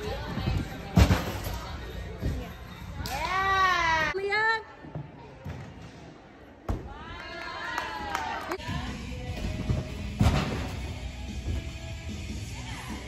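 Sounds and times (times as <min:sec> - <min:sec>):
thud: 0:10.2 - 0:10.9.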